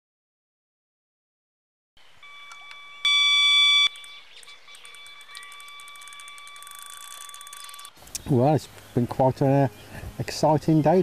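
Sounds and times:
bite alarm high-pitched tone: 2.2s - 4.1s
rapid ticking: 3.9s - 8.0s.

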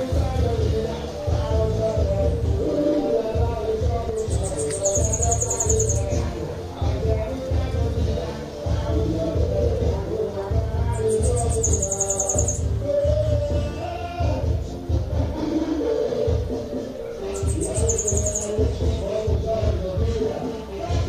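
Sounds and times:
bird singing high rapid trills: 0.0s - 7.3s, 10.8s - 14.0s, 16.8s - 19.3s
music with steady bass beat: 0.0s - 21.0s.

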